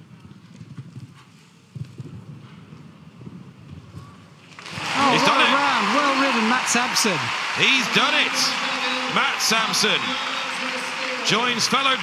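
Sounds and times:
horse hooves thudding: 0.0 - 4.2
crowd cheering: 4.6 - 12.0.

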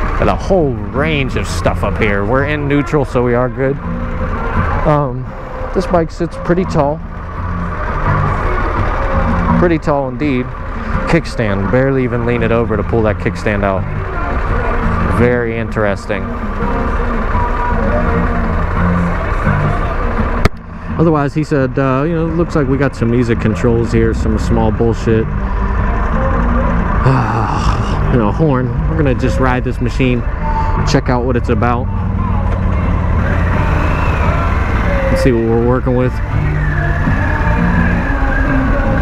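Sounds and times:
motorcycle engine idling: 0.0 - 39.0.

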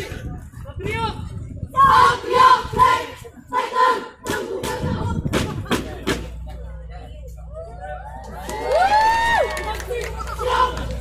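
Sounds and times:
group of young voices shouting: 8.7 - 11.0.

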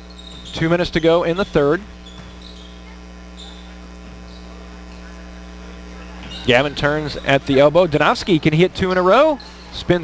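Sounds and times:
faint high squeaks: 0.0 - 4.7, 6.2 - 7.2, 8.9 - 9.8
electrical mains hum: 0.0 - 10.0.

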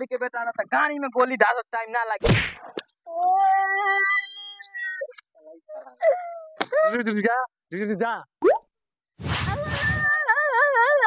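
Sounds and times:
cat-like wail: 9.4 - 10.6.

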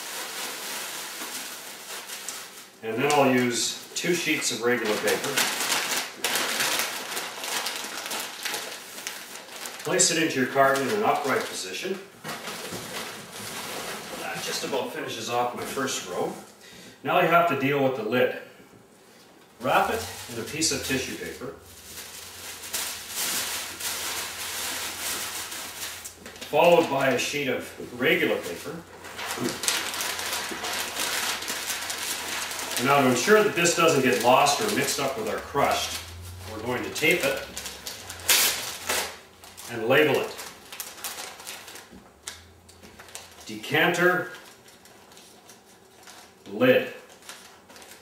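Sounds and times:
packing paper rustling and crinkling: 0.0 - 16.3, 19.6 - 48.0.

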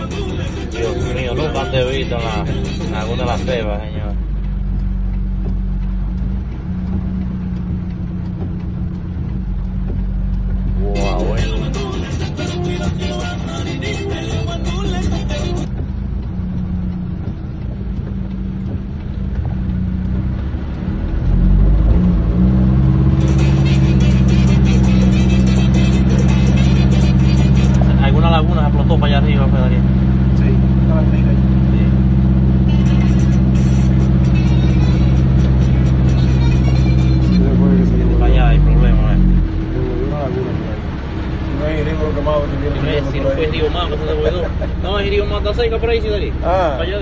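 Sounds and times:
voices or music: 0.0 - 4.3, 10.6 - 15.7, 23.1 - 40.7
car driving through water: 0.0 - 47.0
car engine running: 0.0 - 47.0.

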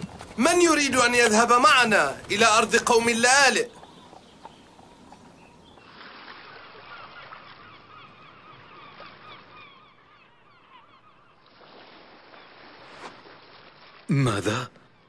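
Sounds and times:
flock of birds calling: 1.2 - 12.7.

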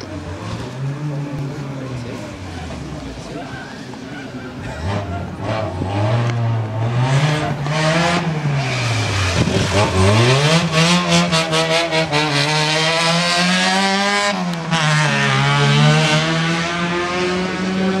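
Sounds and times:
rally car engine revving: 4.5 - 18.0.

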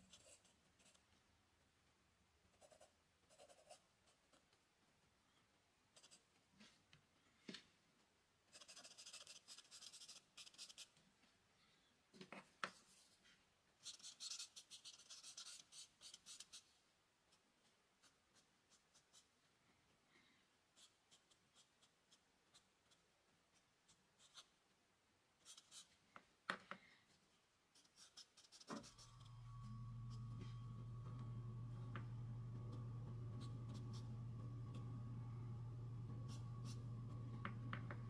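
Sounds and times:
pencil scratching on paper: 0.0 - 1.0, 2.6 - 3.8, 8.5 - 10.9, 13.8 - 16.7, 23.6 - 24.5, 25.4 - 26.0, 27.8 - 29.2.

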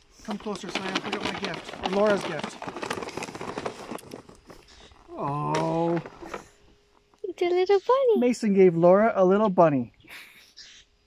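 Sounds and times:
plastic bag crinkling: 0.3 - 4.9.

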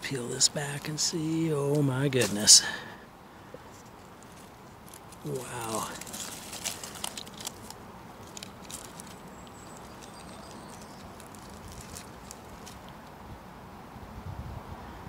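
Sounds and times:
twigs and dry litter crackling: 0.0 - 13.2.

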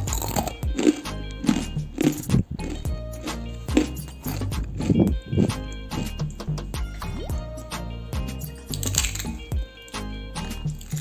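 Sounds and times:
crisp snack crunching: 0.0 - 6.2, 8.7 - 9.4, 10.5 - 11.0
background music with steady beat: 0.0 - 11.0.

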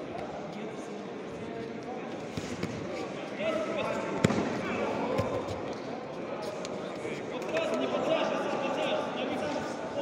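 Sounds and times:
voices echoing in a hall: 0.0 - 10.0.

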